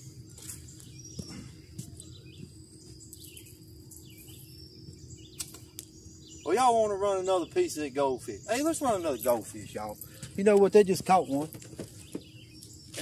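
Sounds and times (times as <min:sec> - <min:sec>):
high insect drone: 0:00.0 - 0:13.0.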